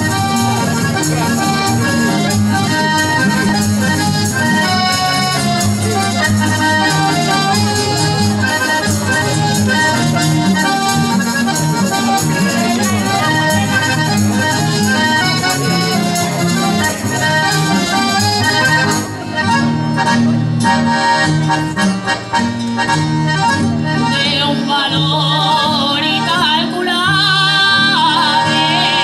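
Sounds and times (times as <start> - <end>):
rhythmic bass line: 0.0 - 24.5
accordion: 0.0 - 29.0
acoustic guitars: 0.0 - 29.0.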